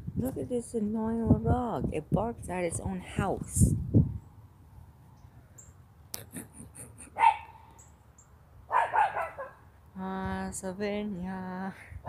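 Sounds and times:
small dog barking: 0:07.2 - 0:07.6, 0:08.7 - 0:09.6.

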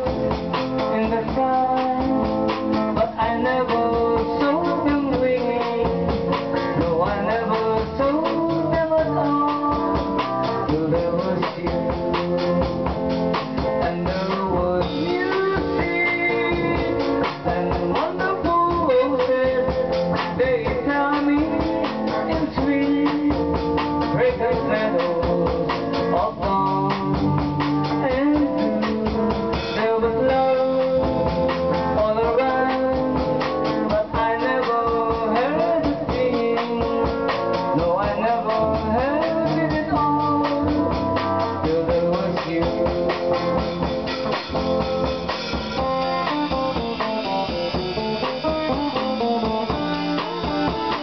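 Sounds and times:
drum kit: 0:00.0 - 0:51.0
electric guitar melody: 0:00.0 - 0:51.0.

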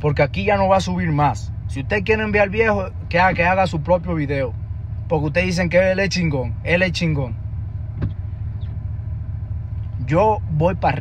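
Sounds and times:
car engine idling inside cabin: 0:00.0 - 0:11.0.

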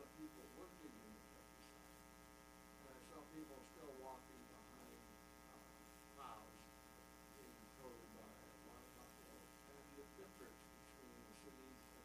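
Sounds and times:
faint mains hum: 0:00.0 - 0:12.0
faint distant speech: 0:02.8 - 0:12.0.

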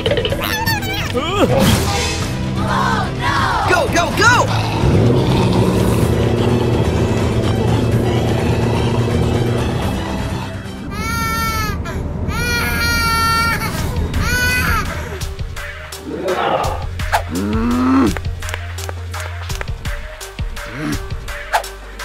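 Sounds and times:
background music: 0:00.0 - 0:22.0
car engine running: 0:03.8 - 0:16.0
high wails: 0:10.8 - 0:15.2.

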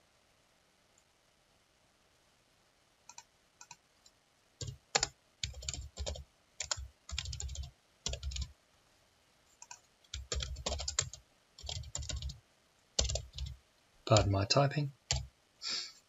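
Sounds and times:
typing on computer keyboard: 0:03.1 - 0:03.8, 0:04.6 - 0:08.5, 0:09.6 - 0:12.4, 0:13.0 - 0:14.3, 0:15.1 - 0:15.3.

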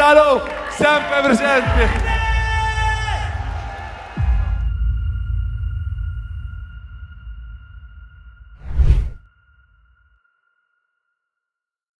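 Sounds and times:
whoosh sound effect: 0:08.6 - 0:09.2.

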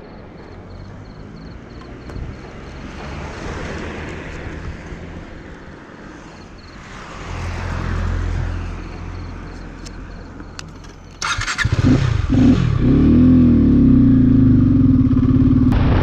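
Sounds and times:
motorcycle engine: 0:10.8 - 0:16.0.

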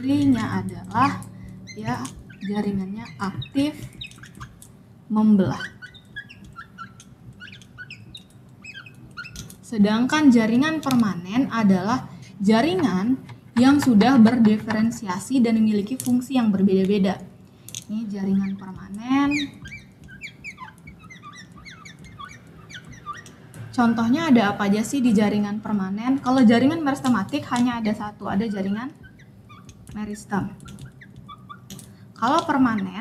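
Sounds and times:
marker squeaking on glass: 0:00.0 - 0:11.6, 0:12.6 - 0:16.5, 0:17.9 - 0:25.3, 0:26.3 - 0:33.0.

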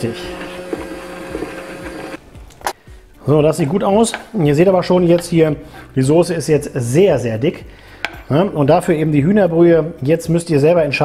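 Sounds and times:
immersion blender whining: 0:00.0 - 0:02.2.

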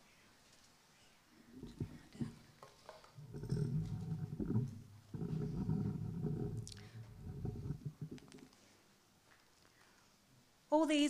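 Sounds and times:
microphone handling rumbles and bumps: 0:01.6 - 0:02.5, 0:03.2 - 0:08.5.

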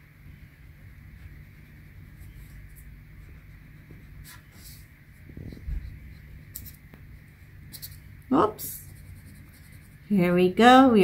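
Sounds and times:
crayon scratching on paper: 0:07.6 - 0:10.4.

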